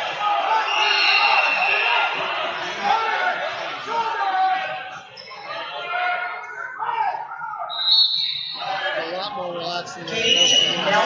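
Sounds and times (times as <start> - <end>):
voices in echoing hall: 0.0 - 11.0
referee's whistle blast: 0.6 - 2.2, 7.7 - 9.0.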